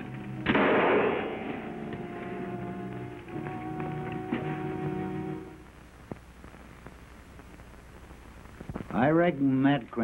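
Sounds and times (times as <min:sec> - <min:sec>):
gunshot: 0:00.4 - 0:01.6.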